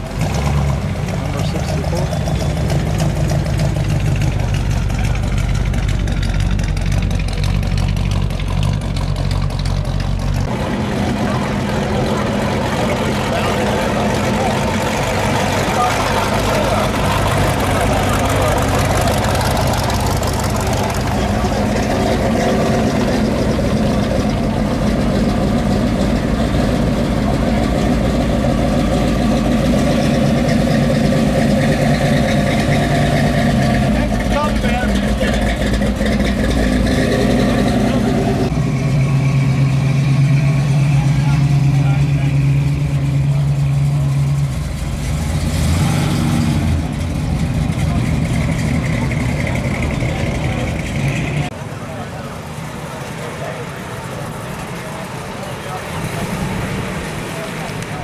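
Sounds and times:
cars driving slowly past: 0:00.0 - 0:58.0
deep steady engine note: 0:00.0 - 0:58.0
people talking: 0:01.0 - 0:02.9, 0:10.5 - 0:30.5, 0:31.4 - 0:38.5, 0:39.4 - 0:44.8, 0:46.6 - 0:58.0.

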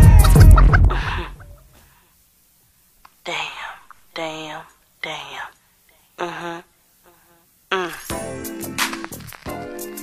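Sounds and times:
short vocal phrases: 0:03.2 - 0:08.1.

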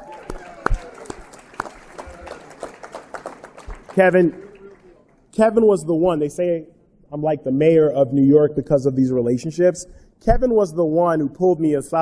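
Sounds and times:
loud close hand claps: 0:00.0 - 0:05.0
audience clapping: 0:00.0 - 0:05.3.

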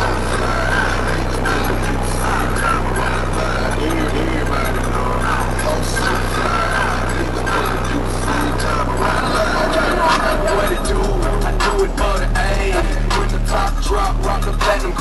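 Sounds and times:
bass-heavy car stereo music: 0:00.0 - 0:15.0
crowd talking: 0:00.0 - 0:15.0.

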